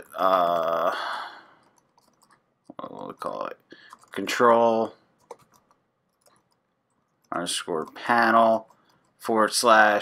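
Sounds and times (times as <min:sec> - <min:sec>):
person speaking: 0:00.0 - 0:01.6, 0:02.7 - 0:05.7, 0:07.3 - 0:10.0
breathy exhale: 0:00.9 - 0:01.6
computer keyboard keystrokes: 0:01.6 - 0:02.8, 0:03.8 - 0:04.2, 0:05.2 - 0:06.6.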